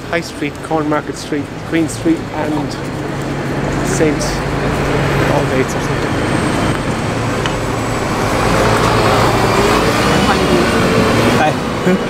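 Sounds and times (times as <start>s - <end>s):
bus engine running: 0.0s - 12.0s
city street traffic: 0.0s - 12.0s.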